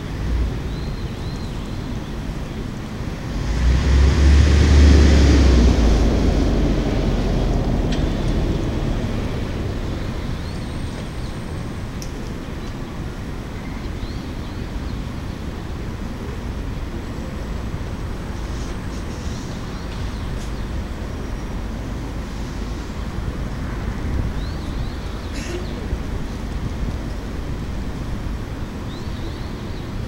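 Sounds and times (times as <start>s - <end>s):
low city rumble: 0.0s - 30.0s
wind buffeting microphone: 23.0s - 25.0s.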